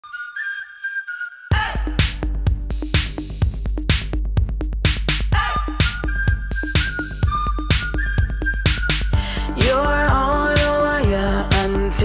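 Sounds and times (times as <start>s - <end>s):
whistled tune: 0.0s - 2.3s, 5.4s - 10.9s
loud drum beat: 1.6s - 12.0s.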